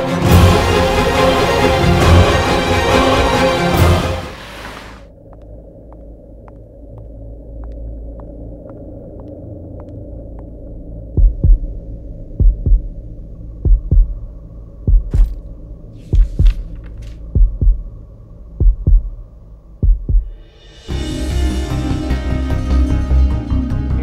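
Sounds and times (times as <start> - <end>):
low droning hum: 5.1 - 24.0
heartbeat thumps: 5.9 - 15.4, 16.0 - 20.5.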